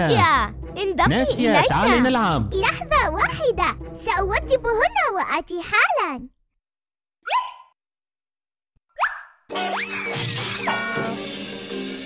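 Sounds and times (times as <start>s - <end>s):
children's background music: 0.0s - 6.3s.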